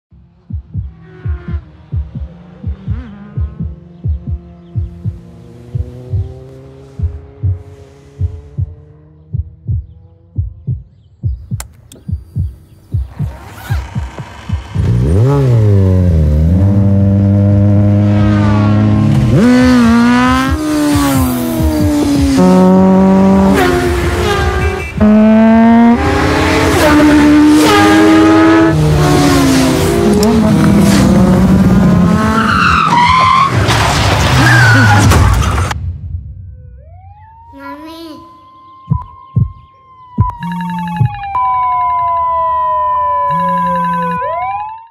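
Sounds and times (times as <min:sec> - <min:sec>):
low heartbeat-like thumping: 0:00.1 - 0:17.8, 0:19.2 - 0:23.7, 0:38.8 - 0:41.4
motorcycle engine revving: 0:00.2 - 0:32.5.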